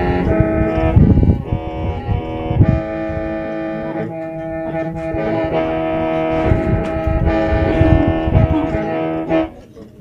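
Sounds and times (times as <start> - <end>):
low bumps: 0.0 - 9.6
reedy mouth organ chords: 0.0 - 9.6.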